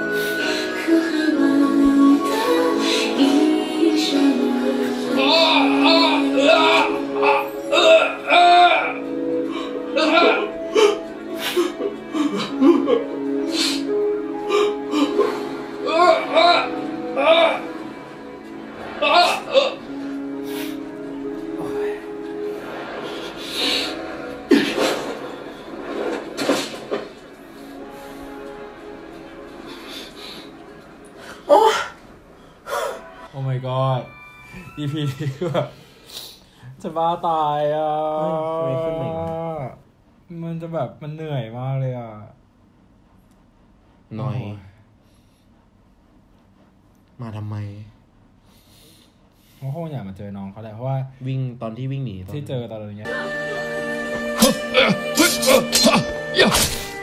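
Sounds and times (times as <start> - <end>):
person singing ballad: 0.1 - 7.6
man crying out low: 5.2 - 9.1, 10.0 - 11.0, 15.8 - 17.7, 54.4 - 56.7.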